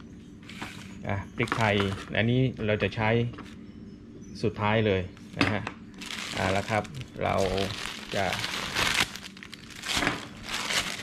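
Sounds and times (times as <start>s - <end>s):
plastic bag crinkling: 6.0s - 11.0s.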